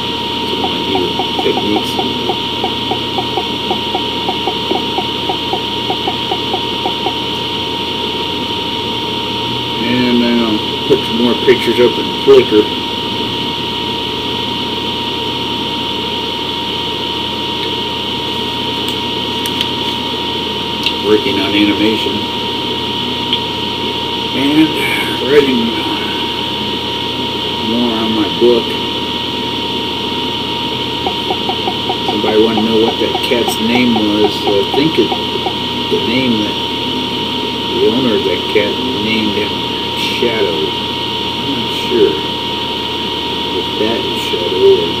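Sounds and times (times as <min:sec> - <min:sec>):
thin steady high tone: 0:00.0 - 0:12.9, 0:20.1 - 0:45.0
high-pitched whine: 0:00.0 - 0:45.0
hum and hiss of room noise: 0:00.0 - 0:45.0.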